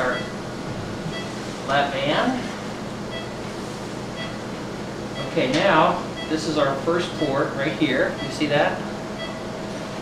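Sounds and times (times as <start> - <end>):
equipment and ventilation noise: 0.0 - 10.0.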